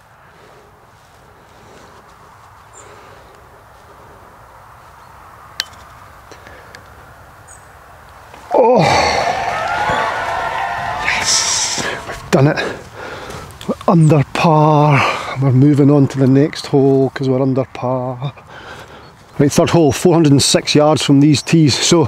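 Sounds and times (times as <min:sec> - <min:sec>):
putter striking golf ball: 0:05.6 - 0:05.9
man shouting in celebration: 0:08.5 - 0:12.2.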